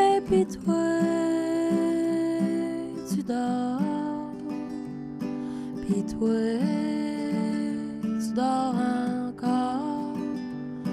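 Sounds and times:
strummed acoustic guitar: 0.0 - 10.9
woman singing: 0.0 - 10.9.

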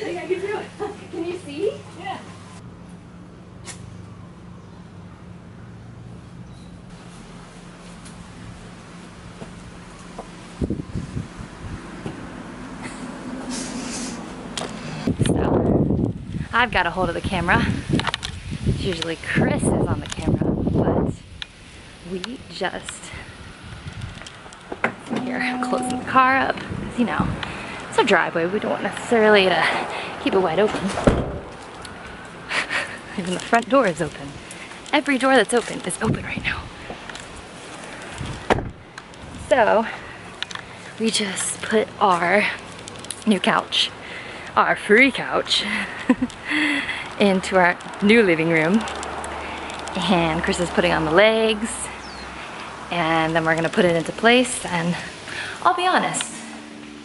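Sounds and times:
faint outdoor background noise: 0.0 - 57.0
car door slamming: 30.9 - 31.5, 38.4 - 38.8.

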